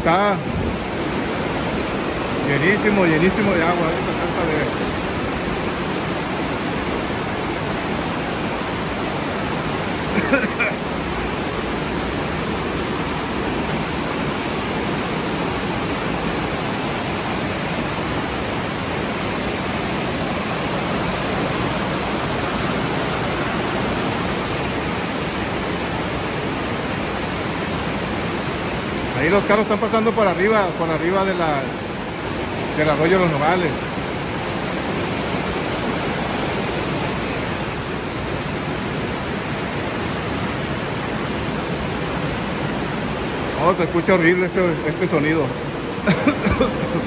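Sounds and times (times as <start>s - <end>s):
fast water rushing: 0.0s - 47.0s.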